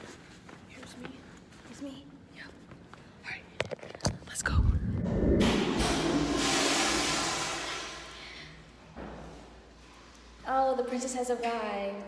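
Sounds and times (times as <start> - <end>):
toilet flushing: 5.4 - 8.8.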